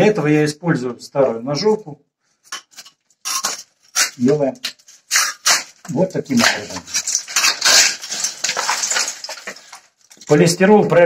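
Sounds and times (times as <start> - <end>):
foam board scraping and tearing: 2.7 - 10.0.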